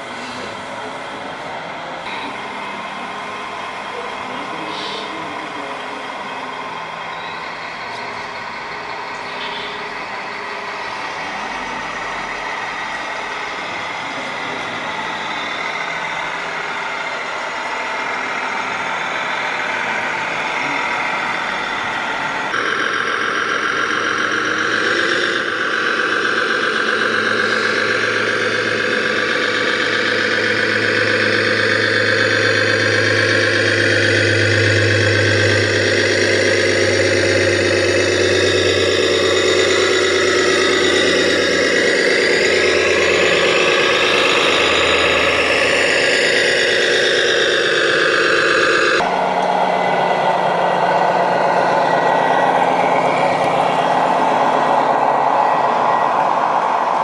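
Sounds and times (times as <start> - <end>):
high engine whine: 0.0 - 57.0
simulated diesel engine drone: 0.0 - 57.0.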